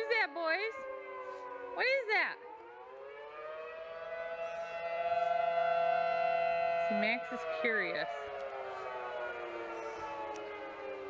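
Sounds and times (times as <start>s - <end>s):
tornado warning siren: 0.0s - 11.0s.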